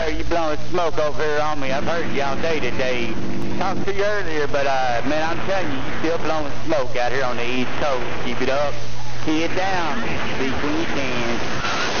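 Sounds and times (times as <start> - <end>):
voice over radio: 0.0 - 11.6
radio static hiss: 0.0 - 12.0.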